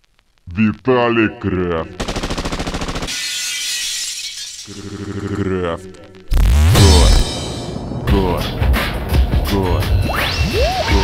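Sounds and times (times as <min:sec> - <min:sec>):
glass shattering: 0:03.1 - 0:05.1.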